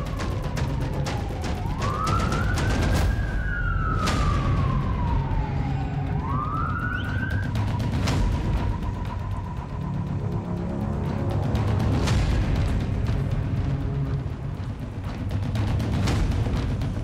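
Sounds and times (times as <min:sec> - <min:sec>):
emergency vehicle siren wailing: 0:00.0 - 0:12.0
dramatic music: 0:00.0 - 0:17.0.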